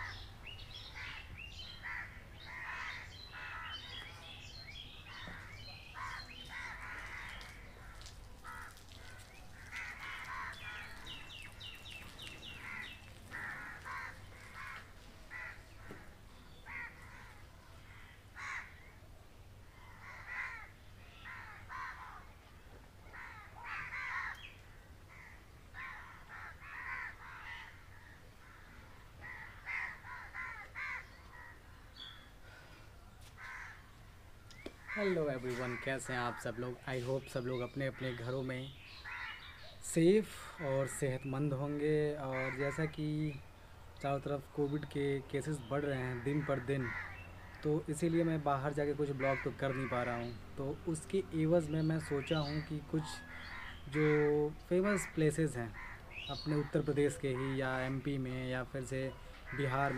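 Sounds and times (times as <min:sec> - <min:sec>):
birds making harsh calls: 0:00.0 - 0:19.0, 0:19.7 - 0:22.3, 0:23.1 - 0:32.6, 0:33.2 - 0:33.9, 0:34.5 - 0:59.9.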